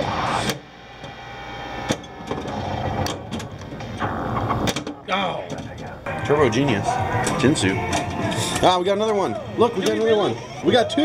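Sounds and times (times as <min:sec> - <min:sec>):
pinball mechanical clicks and knocks: 0:01.9 - 0:05.9.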